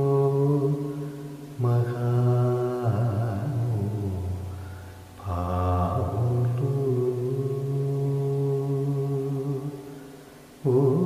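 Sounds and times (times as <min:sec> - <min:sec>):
man singing long held notes: 0:00.0 - 0:11.0.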